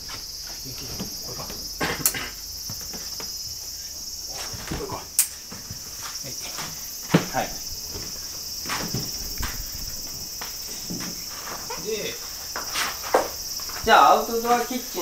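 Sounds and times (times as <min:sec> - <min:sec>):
insects chirring: 0:00.0 - 0:15.0
soft footsteps on floor: 0:02.6 - 0:13.9.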